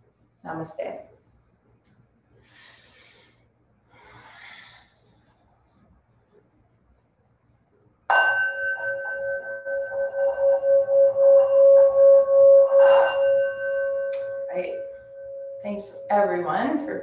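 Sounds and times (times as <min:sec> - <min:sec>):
singing bowl ringing: 0:08.1 - 0:17.0.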